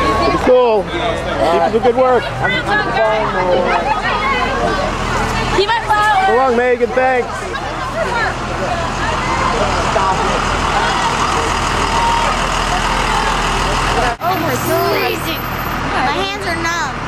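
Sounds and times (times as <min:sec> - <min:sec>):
bus engines idling: 0:00.0 - 0:17.0
people talking and calling out: 0:00.0 - 0:17.0.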